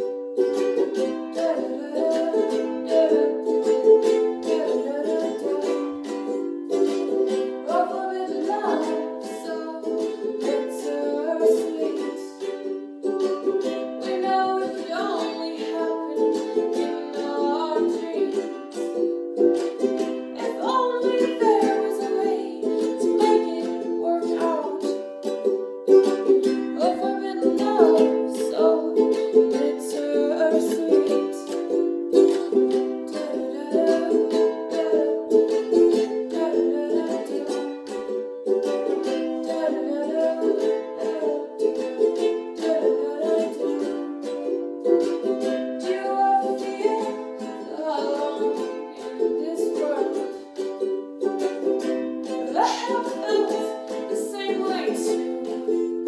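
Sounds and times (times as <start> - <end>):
ukulele strumming chords: 0.0 - 56.0.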